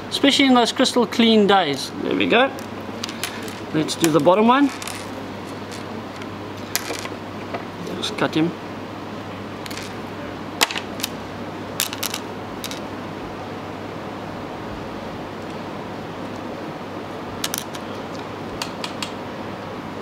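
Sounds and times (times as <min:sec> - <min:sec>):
steady room hum: 0:00.0 - 0:20.0.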